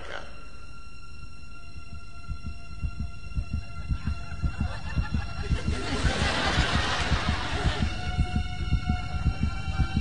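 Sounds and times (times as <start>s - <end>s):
heartbeat-like low pulse: 1.6s - 10.0s
studio audience laughter: 4.0s - 8.0s.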